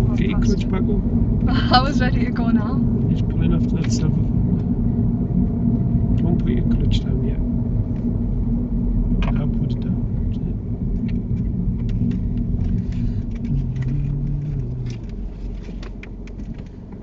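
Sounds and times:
car engine: 0.0s - 17.0s
road noise inside car: 0.0s - 17.0s.

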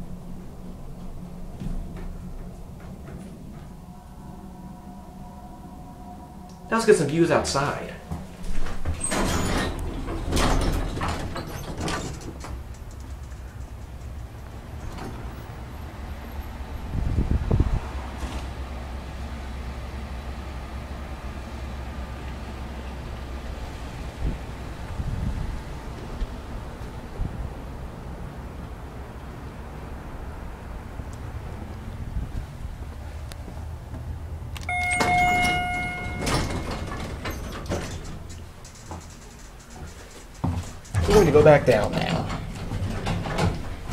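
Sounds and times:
low rumble: 0.0s - 10.4s
elevator doors sliding: 0.0s - 43.9s
short electronic beep: 34.7s - 37.2s.

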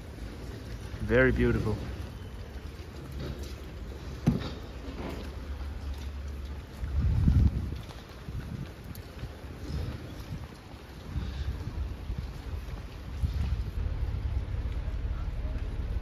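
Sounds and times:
wind buffeting microphone: 5.3s - 16.0s.

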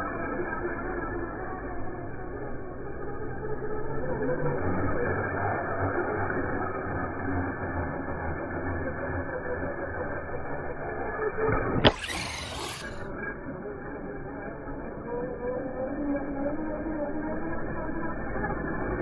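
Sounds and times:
rc trucks running on concrete: 0.0s - 19.0s.

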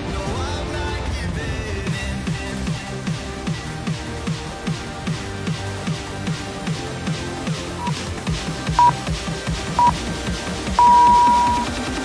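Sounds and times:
electronic music with steady beat: 7.8s - 9.2s, 9.8s - 10.0s, 10.8s - 11.8s
longer timer beep: 10.8s - 11.7s
short timer beeps: 10.8s - 11.7s.

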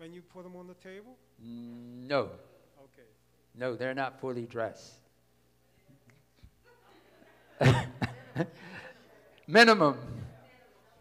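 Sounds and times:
person coughing: 7.6s - 8.2s.

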